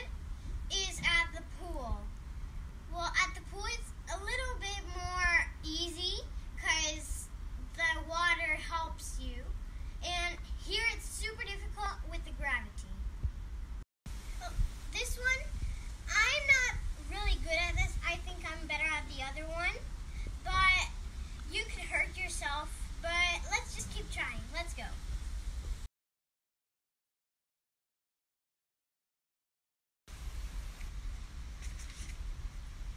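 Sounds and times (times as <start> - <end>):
young girl talking: 0.7 - 2.1, 2.9 - 13.1, 14.4 - 25.0.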